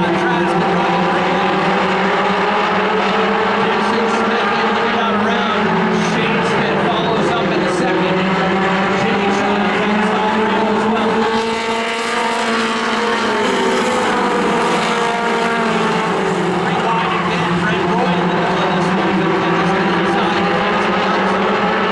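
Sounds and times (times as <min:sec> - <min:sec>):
racing car engines revving: 0:00.0 - 0:21.9.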